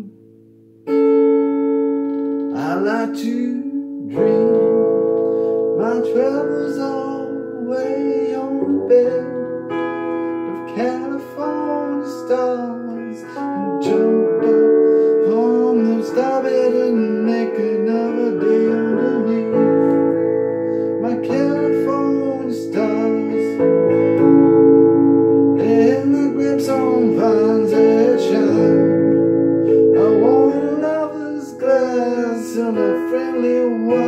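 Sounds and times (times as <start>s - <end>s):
electric guitar chords and bent lead: 0.0s - 34.0s.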